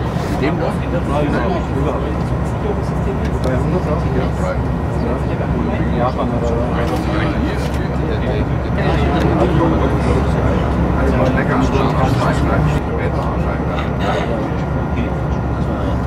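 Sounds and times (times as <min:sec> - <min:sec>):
indistinct voices talking: 0:00.0 - 0:16.0
train cab running rumble: 0:00.0 - 0:16.0.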